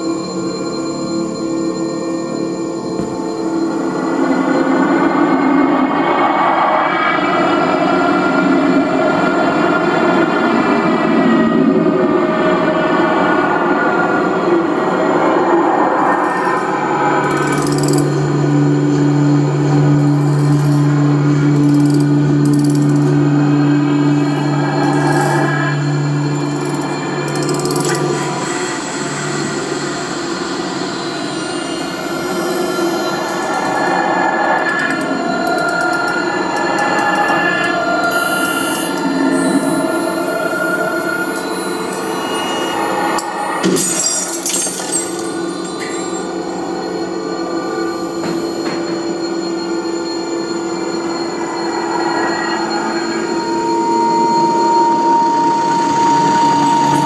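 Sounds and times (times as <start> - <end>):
layered electronic drones: 0.0 - 57.0
strong steady low drone: 16.6 - 38.0.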